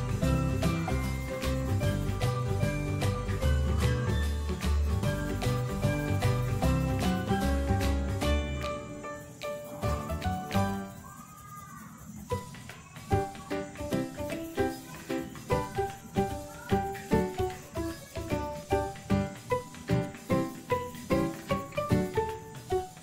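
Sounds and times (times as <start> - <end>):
instrumental music with quick beat: 0.0 - 23.0.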